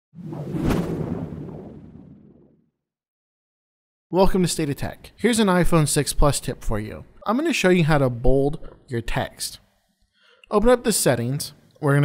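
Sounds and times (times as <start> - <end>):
low rumble: 0.2 - 2.6
whoosh: 0.2 - 2.6.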